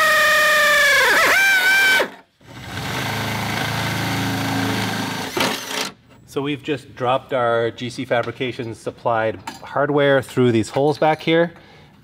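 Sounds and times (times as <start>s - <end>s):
cordless drill drilling metal: 0.0s - 5.9s.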